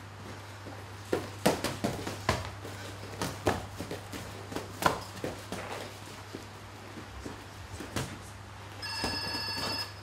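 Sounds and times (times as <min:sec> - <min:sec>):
electronic timer buzzer: 0:08.8 - 0:10.0.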